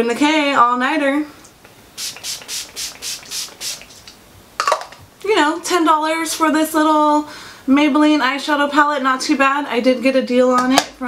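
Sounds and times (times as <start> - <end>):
spray bottle hissing: 2.0 - 4.1.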